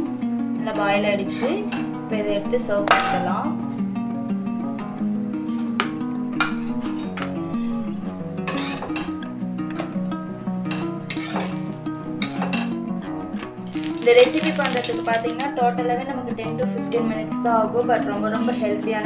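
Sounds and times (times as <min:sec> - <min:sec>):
background music melody: 0:00.0 - 0:19.0.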